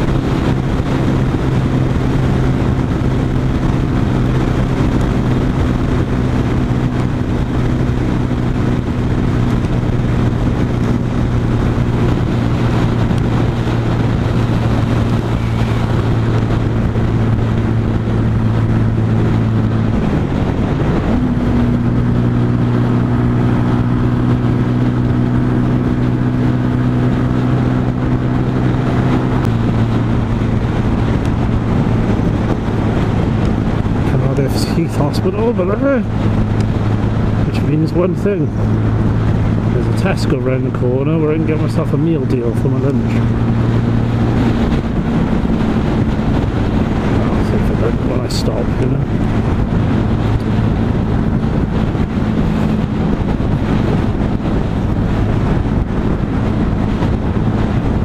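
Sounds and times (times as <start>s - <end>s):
motorcycle engine cruising: 0.0s - 58.0s
wind and road rush: 0.0s - 58.0s.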